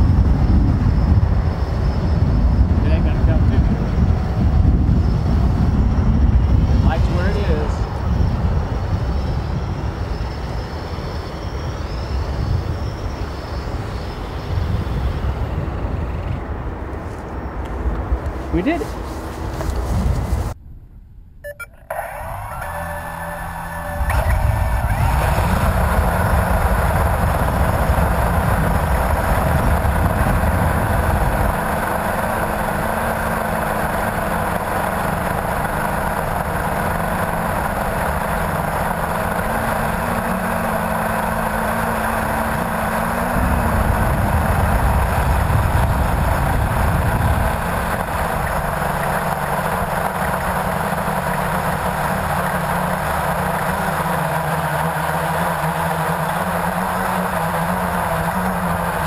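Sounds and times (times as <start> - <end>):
quadcopter propellers buzzing: 0.0 - 20.6, 21.5 - 59.0
wind noise on microphone: 0.0 - 21.6, 22.2 - 59.0.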